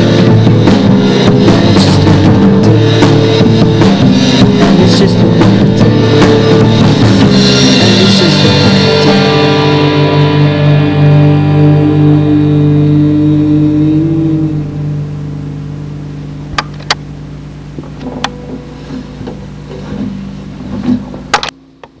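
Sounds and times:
distorted electric guitar chord: 0.0 - 21.9
low amplifier hum: 0.0 - 22.0
sharp clicks and pops: 16.6 - 17.0.

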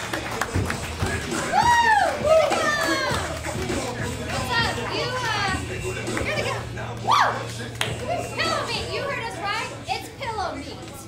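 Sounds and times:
crowd shouting and whooping: 1.0 - 3.6, 6.8 - 8.9.

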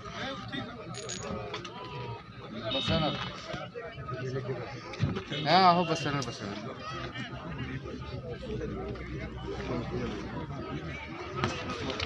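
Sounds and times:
people talking in crowd: 0.0 - 12.0.

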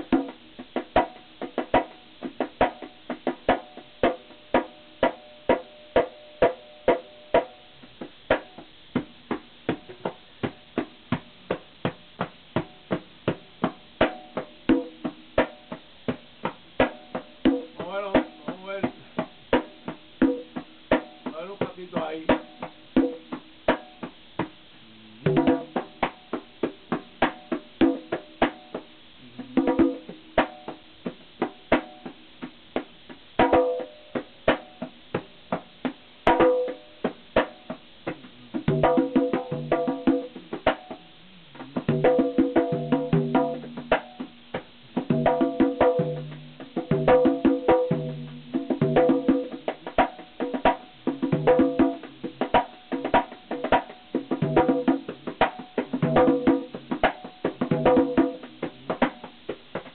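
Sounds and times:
conga drums played by hand: 0.0 - 59.9.

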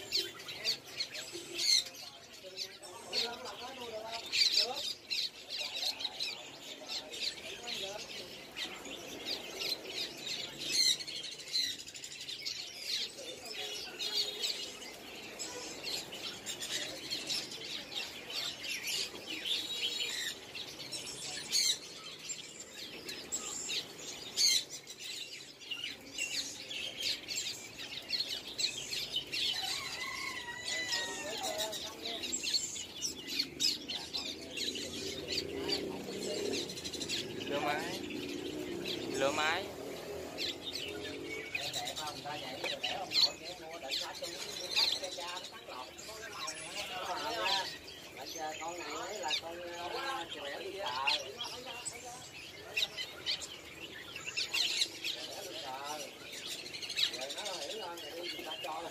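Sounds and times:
songbirds chirping: 0.0 - 58.9.

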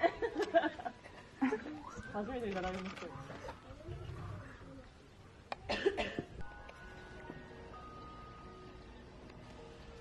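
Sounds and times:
gentle background music: 5.7 - 10.0.

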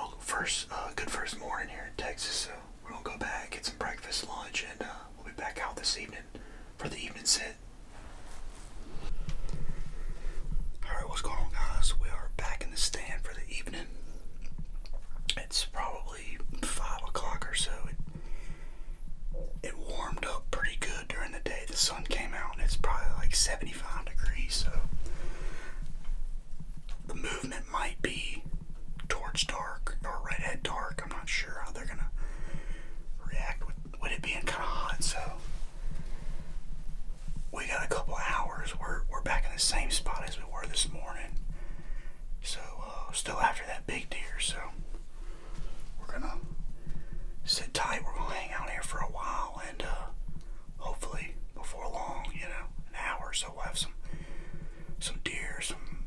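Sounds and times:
man whispering: 0.0 - 8.2, 8.9 - 18.6, 19.4 - 36.6, 37.2 - 56.0.

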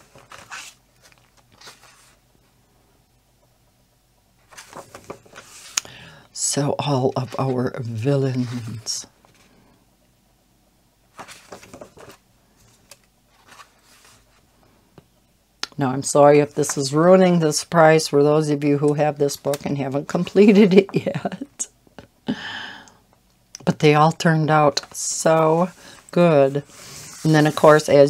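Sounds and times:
paper pages rustling: 0.0 - 2.2, 4.4 - 5.8, 7.2 - 9.6, 11.1 - 14.5, 25.5 - 28.0.

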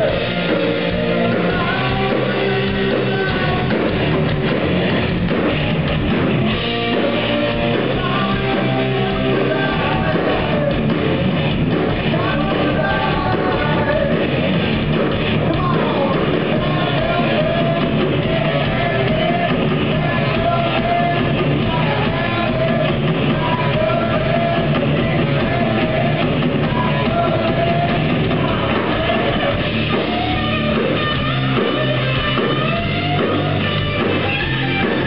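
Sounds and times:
bass guitar: 0.0 - 35.0
distorted electric guitars: 0.0 - 35.0
drum kit: 0.0 - 35.0.

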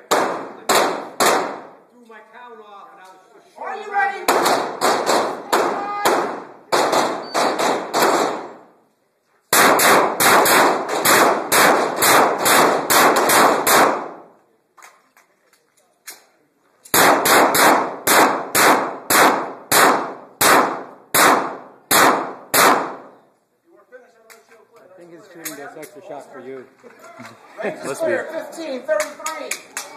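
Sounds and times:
pistol shots echoing: 0.0 - 1.8, 4.2 - 8.6, 9.5 - 14.3, 16.9 - 23.2.

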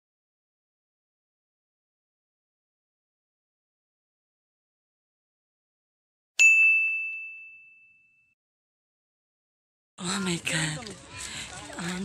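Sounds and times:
bright bell ding: 6.4 - 8.4.

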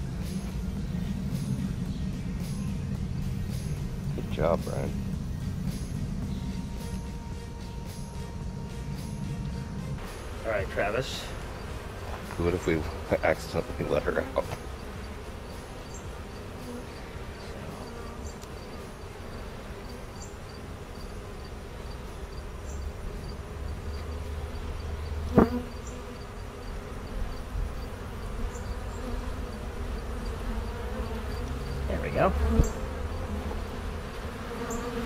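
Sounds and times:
honeybees buzzing: 0.0 - 35.0.

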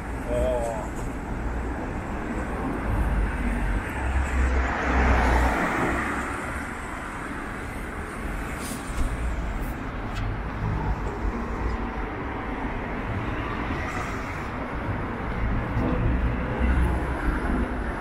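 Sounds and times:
low road noise rumble: 0.0 - 18.0
car passing: 1.4 - 18.0.

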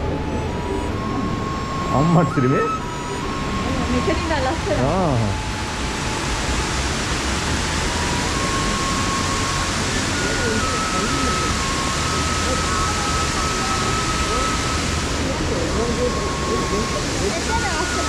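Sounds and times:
waterfall roaring: 0.0 - 18.0.

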